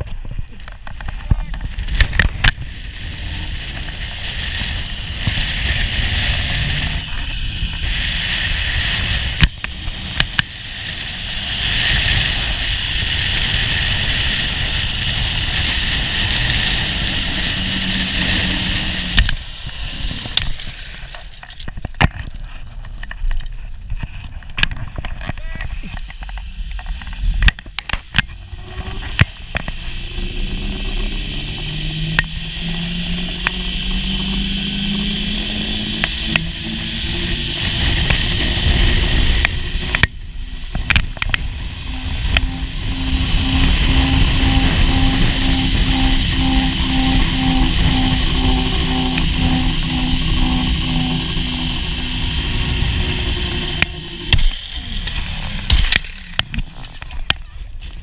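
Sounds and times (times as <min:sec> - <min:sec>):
wind rushing over microphone: 0:00.0 - 0:58.0
zip-line trolley whirring on cable: 0:00.8 - 0:21.7, 0:24.9 - 0:57.6.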